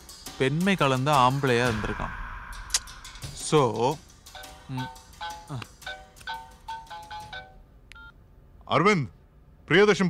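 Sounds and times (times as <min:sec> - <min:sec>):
man speaking: 0:00.8 - 0:02.3
phone keypad beeps: 0:07.1 - 0:08.1.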